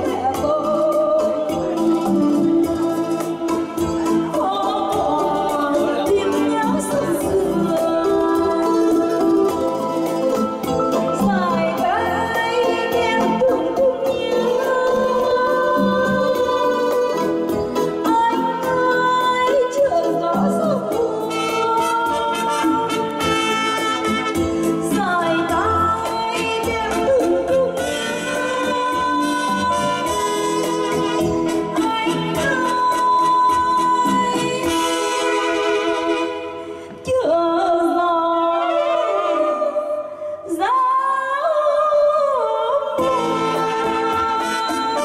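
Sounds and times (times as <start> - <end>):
woman singing: 0.0 - 45.0.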